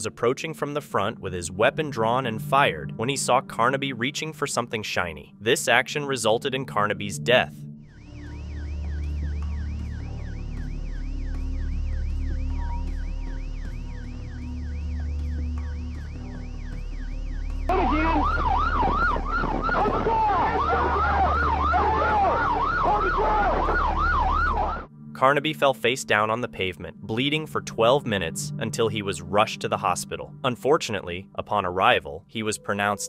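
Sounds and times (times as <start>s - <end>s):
steady low drone: 6.8s - 25.3s
police sirens yelping: 8.0s - 16.9s, 17.6s - 24.9s.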